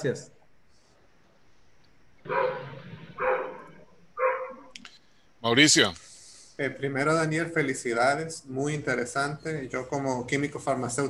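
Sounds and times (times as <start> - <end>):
dog barking: 2.2 - 4.7.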